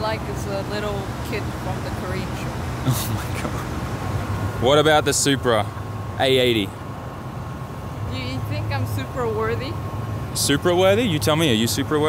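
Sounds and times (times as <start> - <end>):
idling engines and traffic hum: 0.0 - 12.0.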